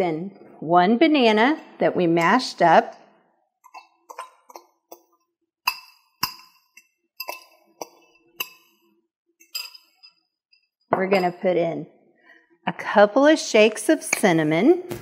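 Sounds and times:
spoon clinking ceramic bowl: 5.7s - 8.8s, 9.4s - 10.1s.

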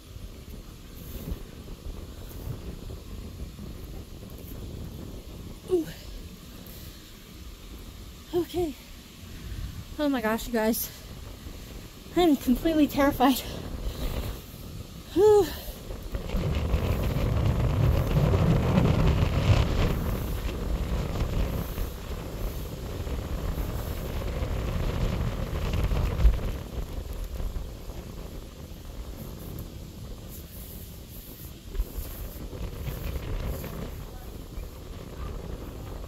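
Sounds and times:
low rumbling on microphone: 0.0s - 36.0s.

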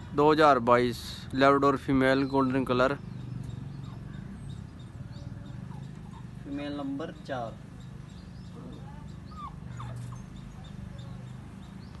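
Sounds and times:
puppy whimpering: 5.4s - 6.4s, 8.7s - 10.8s.

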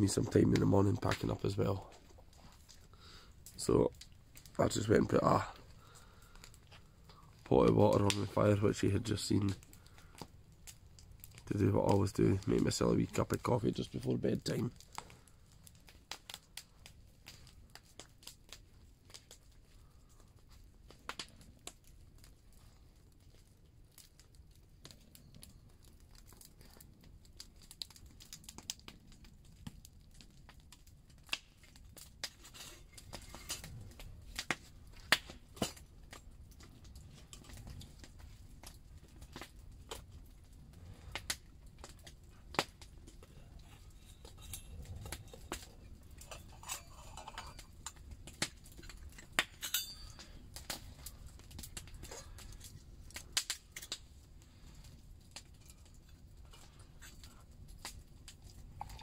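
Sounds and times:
campfire crackling and popping: 0.0s - 59.0s
metal mugs clinking: 46.2s - 47.8s, 49.6s - 50.3s.

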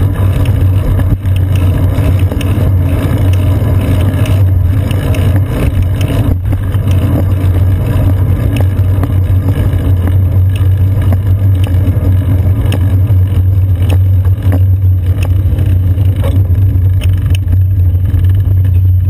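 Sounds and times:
low hum: 0.0s - 19.0s
wind and road rumble: 0.0s - 19.0s.

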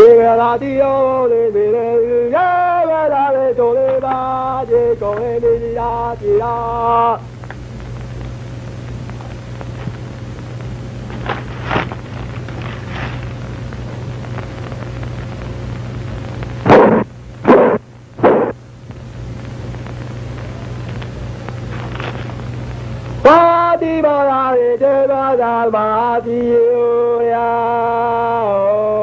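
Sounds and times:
low hum and hiss: 0.0s - 29.0s
loud sudden bangs: 16.6s - 18.6s.

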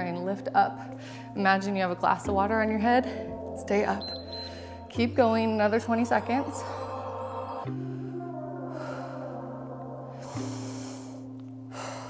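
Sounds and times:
background music chords: 0.0s - 12.0s.

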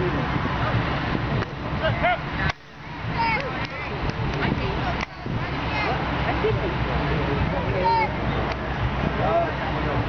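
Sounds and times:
scattered voices: 0.0s - 10.0s
wind rumbling on microphone: 0.0s - 10.0s.

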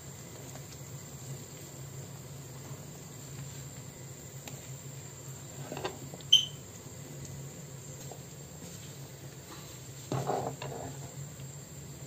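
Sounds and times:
fruit frying in oil: 0.0s - 12.0s
steady high-pitched whine: 0.0s - 12.0s.

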